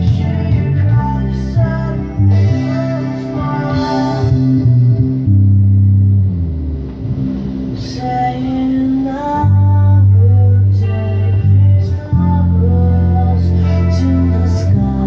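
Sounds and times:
recorded pop song with vocals: 0.0s - 5.6s, 7.7s - 15.0s
electric bass guitar: 0.0s - 15.0s.

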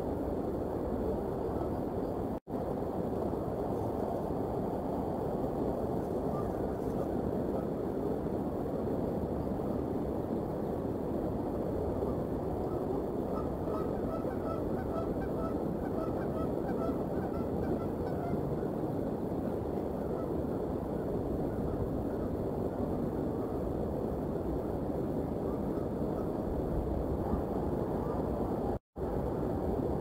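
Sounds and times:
distant goose honks: 13.3s - 18.4s.

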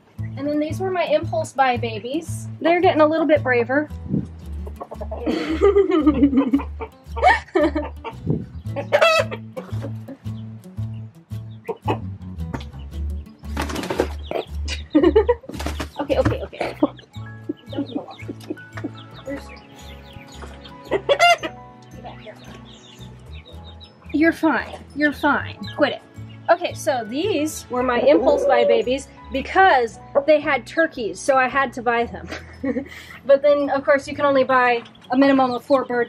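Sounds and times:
music with steady bass beat: 0.0s - 25.9s
chickens clucking and squawking: 4.5s - 10.5s, 11.6s - 12.1s, 13.5s - 16.0s, 16.6s - 23.6s, 27.8s - 30.6s
woman laughing: 5.1s - 8.2s, 14.6s - 15.5s, 16.6s - 19.4s, 28.0s - 28.9s, 32.2s - 33.0s
wings flapping: 13.4s - 14.4s, 15.4s - 16.4s.

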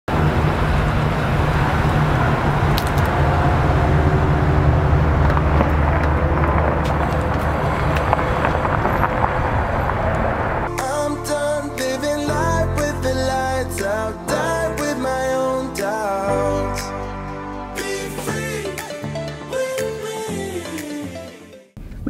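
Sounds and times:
truck engine driving past: 0.1s - 10.7s.

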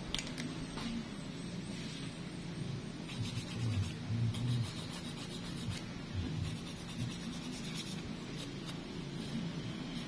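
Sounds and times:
emery board filing a nail: 3.1s - 8.8s.

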